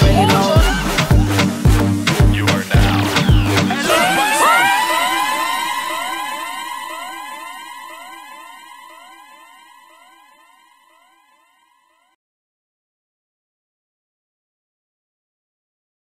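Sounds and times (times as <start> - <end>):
electronic dub siren sweeps: 0.0 - 12.1.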